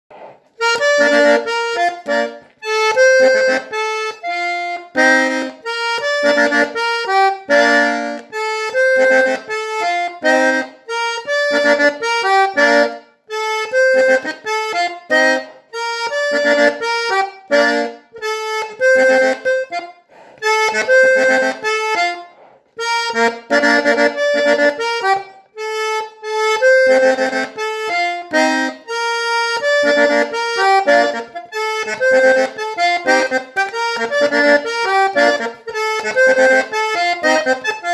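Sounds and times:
button accordion melody: 0:00.1 - 0:37.9.

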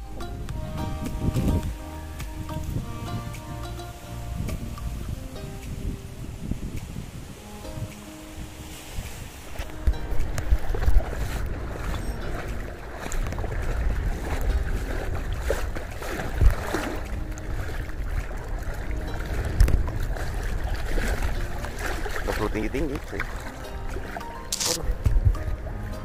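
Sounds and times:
wind buffeting microphone: 0:00.0 - 0:26.0
water sloshing around legs: 0:06.6 - 0:26.0.

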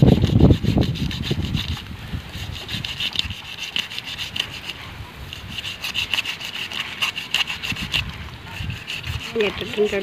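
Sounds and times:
knife scraping fish scales: 0:00.0 - 0:10.0.

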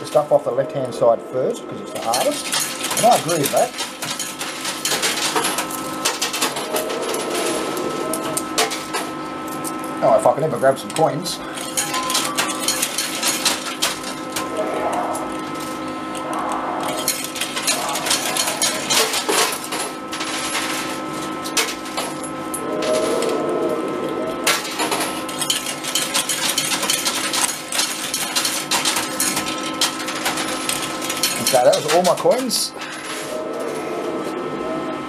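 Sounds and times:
machine hum: 0:00.0 - 0:35.0
coins clinking: 0:02.0 - 0:23.4, 0:24.4 - 0:33.4.

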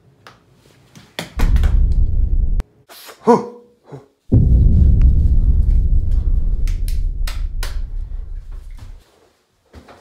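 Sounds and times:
deep loud rumble: 0:01.4 - 0:02.6, 0:04.3 - 0:09.0
sharp crackles: 0:04.3 - 0:09.0.

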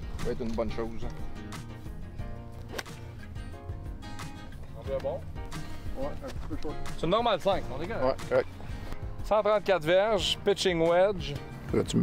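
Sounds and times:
background music with steady beat: 0:00.0 - 0:12.0
golf club striking ball: 0:02.6 - 0:03.3.

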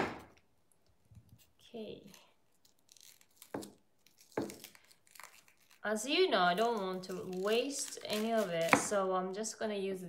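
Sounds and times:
knife crunching through vegetable: 0:01.2 - 0:05.9, 0:06.5 - 0:08.9.

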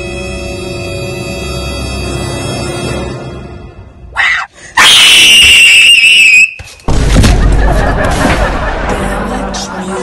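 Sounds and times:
high-pitched human scream: 0:04.2 - 0:06.5.

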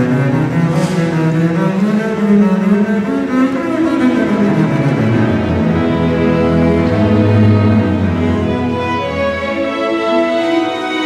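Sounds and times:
bowed double bass melody: 0:00.0 - 0:11.0
string orchestra accompanying: 0:00.0 - 0:11.0.

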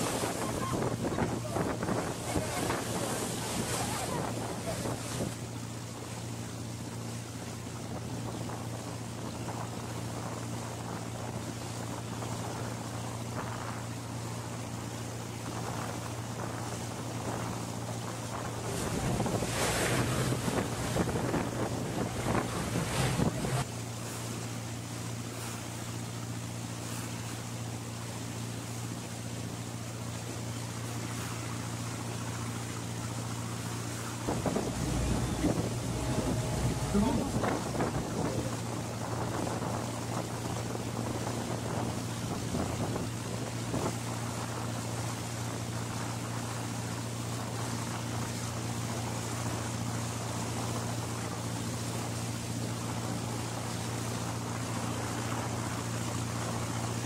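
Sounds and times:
wind buffeting microphone: 0:00.0 - 0:05.4, 0:15.4 - 0:23.7, 0:34.1 - 0:43.9
boat engine humming: 0:00.0 - 0:57.0
water rushing along hull: 0:00.0 - 0:57.0.

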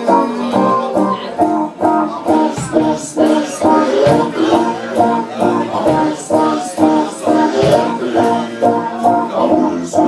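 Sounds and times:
bass: 0:00.0 - 0:10.0
drums: 0:00.0 - 0:10.0
electric guitar chords: 0:00.0 - 0:10.0.

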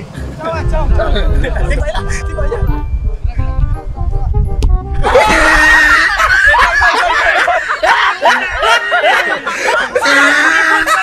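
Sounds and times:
young men screaming and shouting: 0:05.0 - 0:11.0.

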